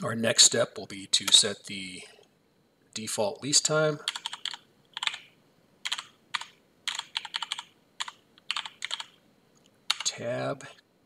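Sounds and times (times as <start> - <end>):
computer keyboard typing: 4.1 - 9.2, 9.9 - 10.2.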